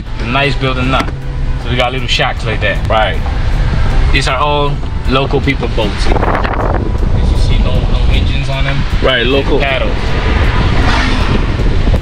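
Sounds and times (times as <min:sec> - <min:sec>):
wind and road noise: 0:00.0 - 0:12.0
wind buffeting microphone: 0:02.3 - 0:12.0.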